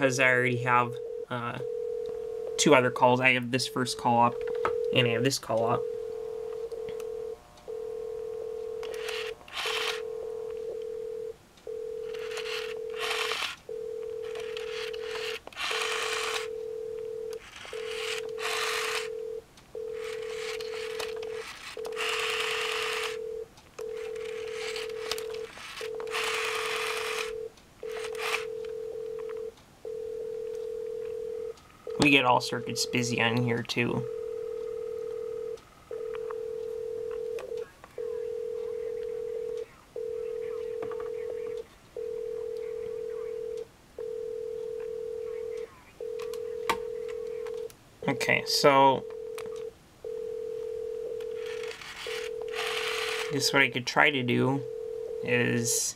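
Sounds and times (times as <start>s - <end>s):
telephone ringback tone: 0.0s - 55.9s
rotary dial whirring: 4.4s - 32.2s, 49.1s - 53.7s.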